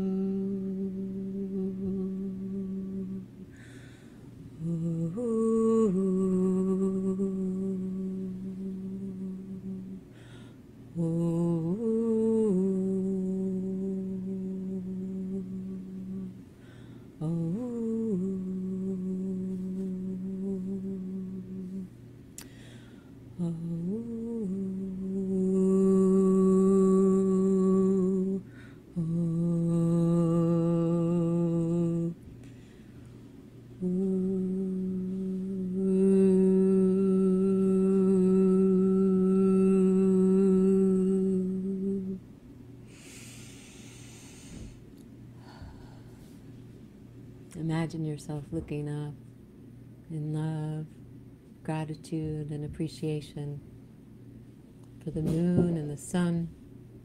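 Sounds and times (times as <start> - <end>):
woman humming held notes: 0.0 - 3.8, 4.5 - 10.3, 10.9 - 16.5, 17.2 - 22.6, 23.3 - 32.2, 33.8 - 42.3, 55.0 - 56.5.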